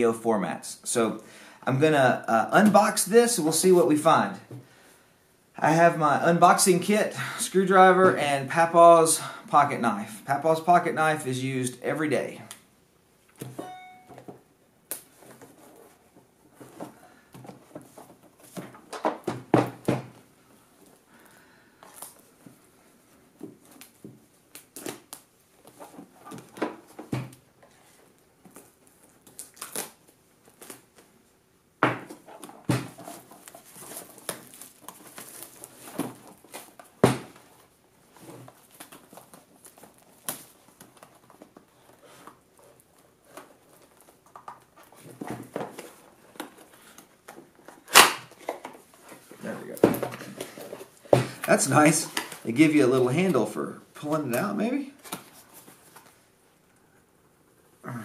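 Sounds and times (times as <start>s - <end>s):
plastic wrap crinkling and tearing: 28.5s - 31.0s, 33.1s - 36.8s.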